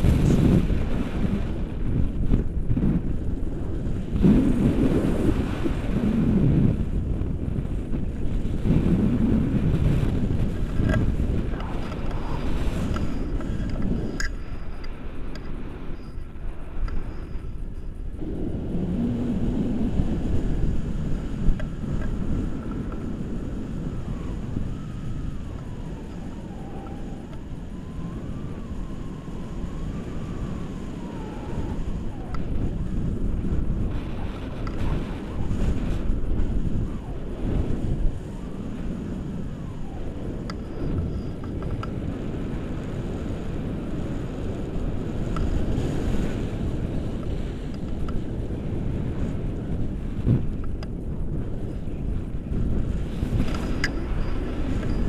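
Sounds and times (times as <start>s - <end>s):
wind buffeting microphone: 0.0s - 55.0s.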